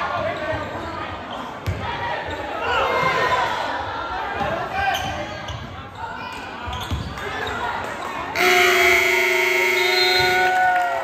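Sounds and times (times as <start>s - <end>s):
scoreboard horn: 8.4s - 10.6s.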